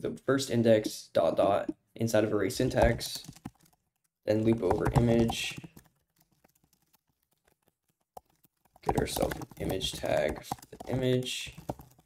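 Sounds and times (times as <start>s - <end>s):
man speaking: 0.0s - 3.3s, 4.3s - 5.6s, 8.9s - 11.6s
keyboard typing: 2.5s - 12.0s.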